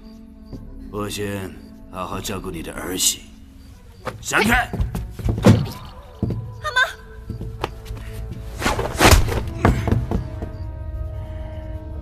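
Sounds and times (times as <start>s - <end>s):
drama score music: 0.0s - 12.0s.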